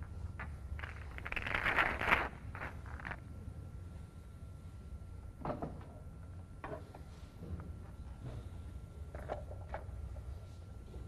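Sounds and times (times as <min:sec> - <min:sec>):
balls rattling: 0:00.0 - 0:03.2.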